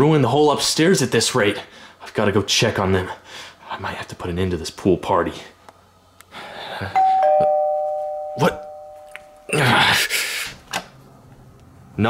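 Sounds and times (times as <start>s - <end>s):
two-tone doorbell chime: 7.0s - 9.5s.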